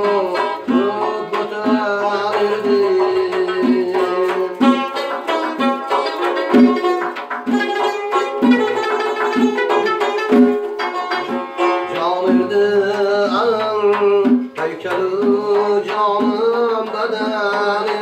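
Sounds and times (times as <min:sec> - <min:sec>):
person singing: 0:00.0 - 0:06.5, 0:11.5 - 0:18.0
plucked lute strumming: 0:00.0 - 0:18.0.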